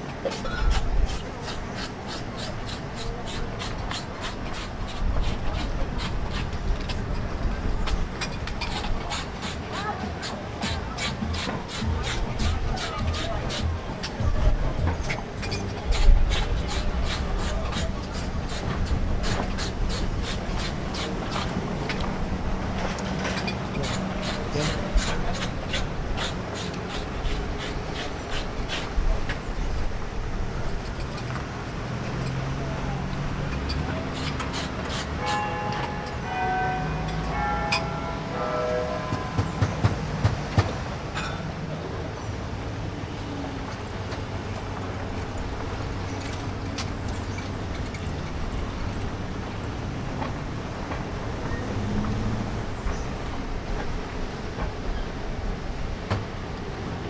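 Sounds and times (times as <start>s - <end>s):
voices: 0.0s - 53.9s
street rumble: 0.0s - 57.0s
hand scraper shaving ice: 0.3s - 6.5s, 8.7s - 13.7s, 23.8s - 28.9s.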